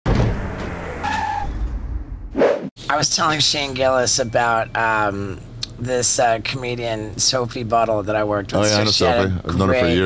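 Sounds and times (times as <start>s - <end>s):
tyres screeching: 0.7s - 1.7s.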